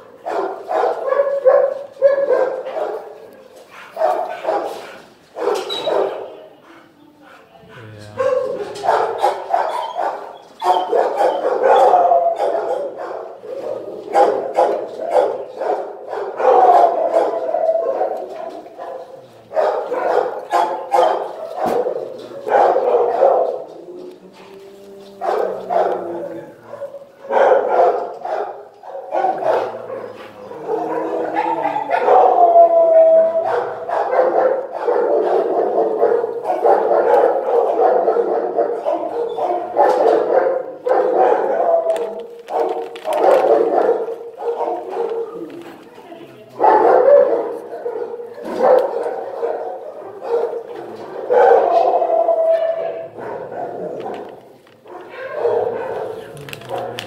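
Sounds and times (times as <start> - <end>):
many dogs barking: 0.0 - 57.0
drawn-out high dog calls: 22.4 - 32.5.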